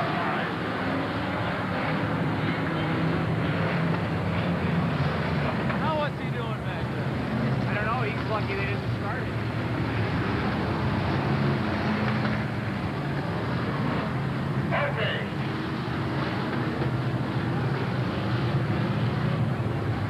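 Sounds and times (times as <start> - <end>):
race car engines running: 0.0 - 20.0
indistinct voices: 14.7 - 15.4.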